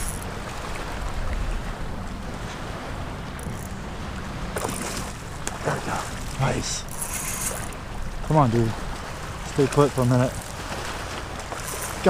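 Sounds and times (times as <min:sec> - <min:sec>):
shallow water lapping: 0:00.0 - 0:12.0
fish splashing: 0:10.3 - 0:12.0.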